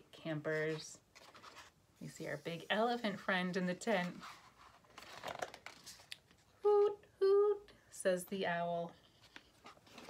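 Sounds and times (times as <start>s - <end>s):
book page turning: 0.6s - 2.7s, 4.0s - 6.5s, 9.2s - 10.0s.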